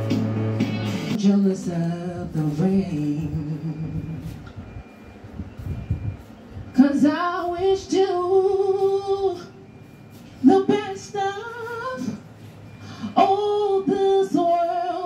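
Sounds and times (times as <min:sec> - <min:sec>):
woman singing a cappella: 0:01.1 - 0:04.5, 0:06.7 - 0:09.7, 0:10.4 - 0:15.0.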